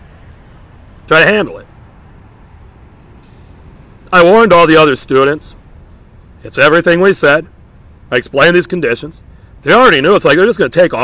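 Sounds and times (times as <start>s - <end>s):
low rumble and hiss: 0.0s - 11.0s
brief soft hiss: 3.2s - 3.6s.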